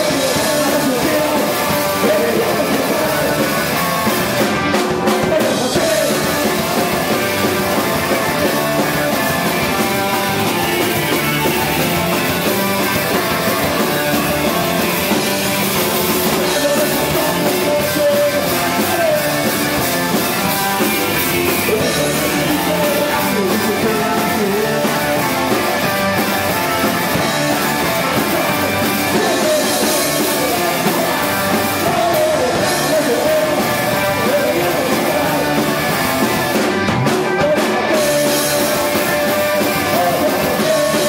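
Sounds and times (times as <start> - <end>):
rock band playing live: 0.0 - 41.0.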